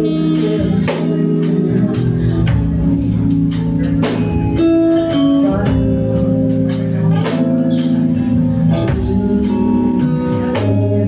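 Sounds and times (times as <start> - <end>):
bass guitar: 0.0 - 11.0
drum kit: 0.0 - 11.0
electric guitar: 0.0 - 11.0
keyboard: 0.0 - 11.0
woman singing: 0.0 - 11.0.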